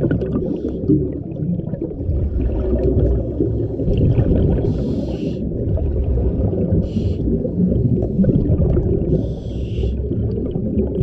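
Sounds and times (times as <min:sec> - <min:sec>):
low underwater rumble: 0:00.0 - 0:11.0
scuba regulator breathing hisses: 0:04.7 - 0:05.5, 0:09.1 - 0:10.0.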